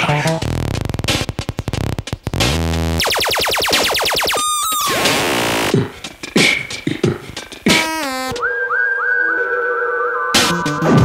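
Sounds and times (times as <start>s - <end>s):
synthesizer falling pitch sweeps: 3.0s - 5.8s.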